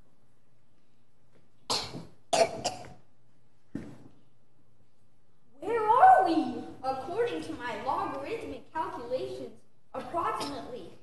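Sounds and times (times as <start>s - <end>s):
person speaking: 5.6s - 11.0s.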